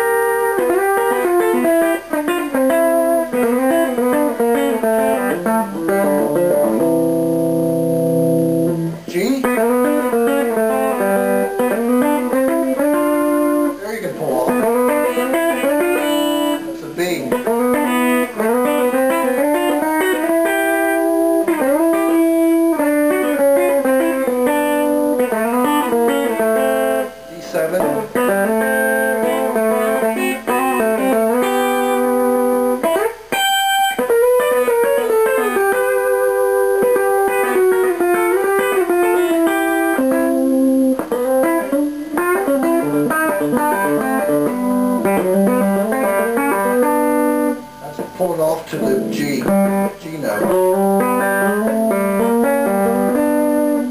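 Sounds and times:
country electric guitar lick: 0.0s - 53.9s.

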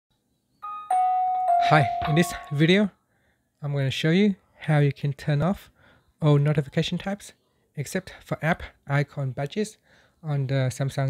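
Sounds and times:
two-note notification chime: 0.6s - 2.7s.

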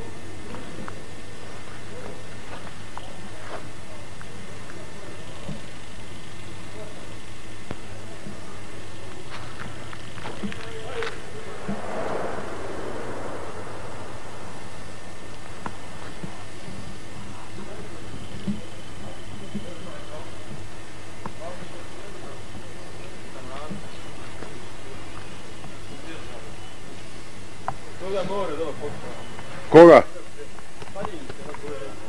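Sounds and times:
faint indistinct voices: 0.0s - 32.0s
steady low hum: 0.0s - 32.0s.

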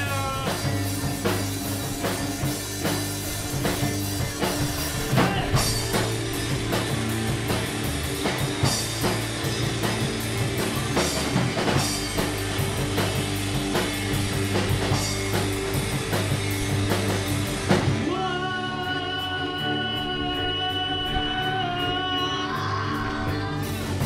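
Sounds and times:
electric guitar notes ringing: 0.0s - 24.0s
rock band playing: 0.0s - 24.0s.

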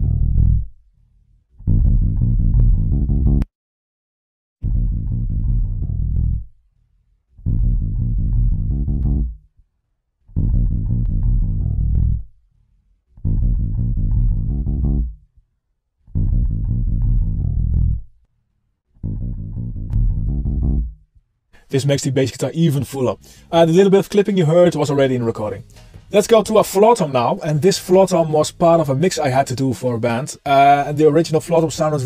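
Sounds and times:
bass guitar phrase: 0.0s - 0.7s, 1.7s - 3.4s, 4.6s - 6.5s, 7.4s - 9.4s, 10.3s - 12.3s, 13.2s - 15.2s, 16.1s - 18.1s, 19.0s - 21.0s.

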